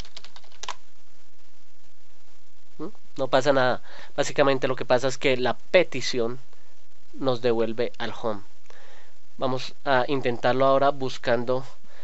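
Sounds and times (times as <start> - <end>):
keyboard typing: 0.0 - 0.8.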